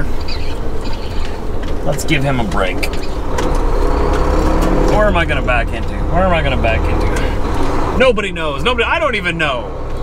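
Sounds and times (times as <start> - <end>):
diesel truck engine rumbling: 0.0 - 10.0.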